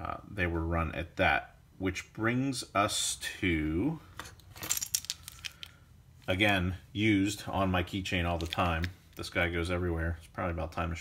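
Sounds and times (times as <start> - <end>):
keys jingling: 4.4 - 5.7.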